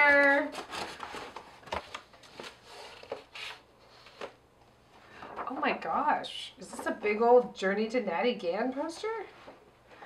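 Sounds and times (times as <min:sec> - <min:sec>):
paper rustle: 0:00.0 - 0:04.4.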